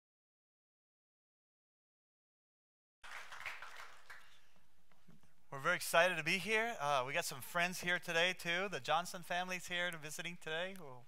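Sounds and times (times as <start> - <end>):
faint scattered clapping: 3.0 - 5.3.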